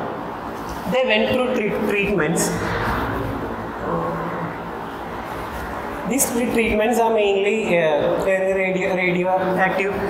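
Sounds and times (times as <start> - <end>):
faint low hum: 0.0 - 10.0
low rumble and room noise: 0.0 - 10.0.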